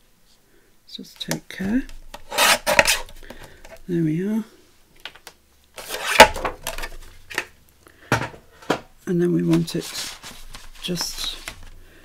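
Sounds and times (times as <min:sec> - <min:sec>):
paper rustling: 0:09.4 - 0:11.8.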